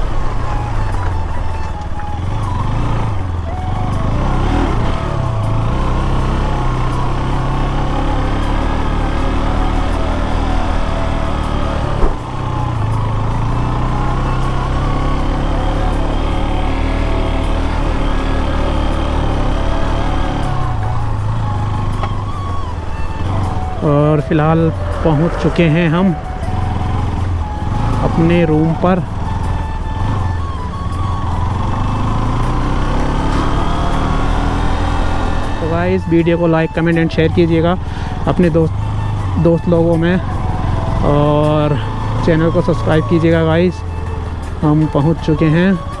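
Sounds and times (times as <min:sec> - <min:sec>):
background music: 0:00.0 - 0:46.0
motorcycle engine running: 0:00.0 - 0:46.0.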